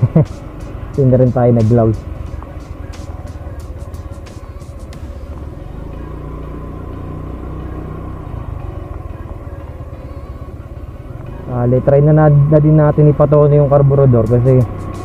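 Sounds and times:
road and wind noise: 0:00.0 - 0:15.0
scooter engine running: 0:00.0 - 0:15.0.

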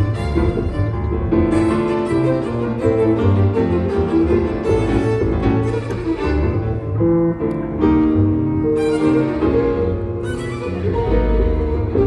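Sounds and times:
low bass line: 0:00.0 - 0:12.0
violin melody: 0:00.0 - 0:12.0.

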